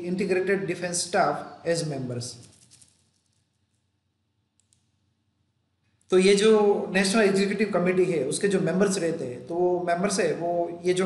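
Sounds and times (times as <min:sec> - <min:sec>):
faint clicks: 0:04.6 - 0:04.9.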